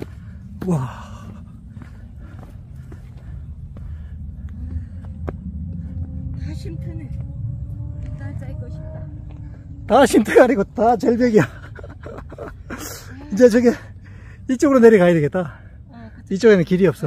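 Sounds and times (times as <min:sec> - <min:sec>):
wind rumble on microphone: 0:00.0 - 0:12.8.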